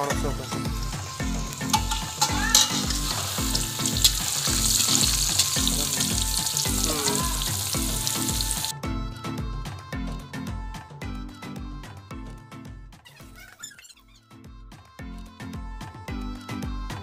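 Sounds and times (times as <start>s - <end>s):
hot oil sizzling: 0.0s - 8.7s
metal spatula clinking on pan: 1.6s - 4.3s.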